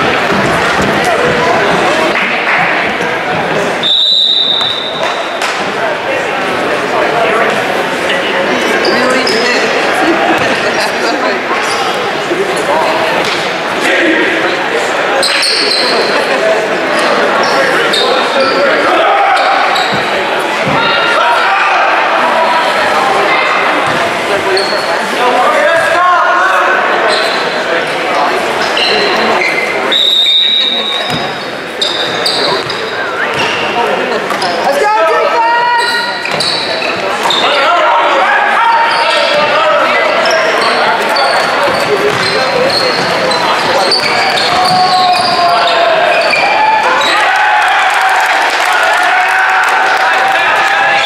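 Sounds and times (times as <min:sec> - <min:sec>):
crowd talking in echoing hall: 0:00.0 - 0:51.0
basketball bouncing on wooden floor: 0:41.7 - 0:42.4.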